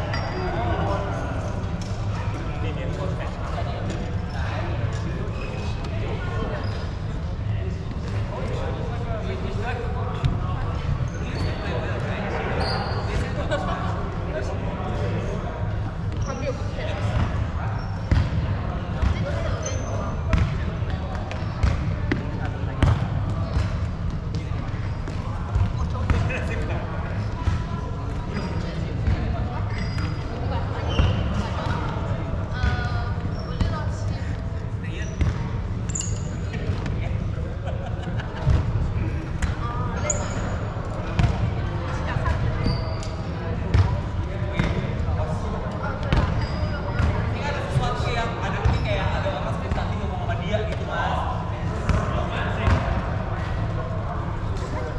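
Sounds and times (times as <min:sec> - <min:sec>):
background chatter of people: 0:00.0 - 0:54.9.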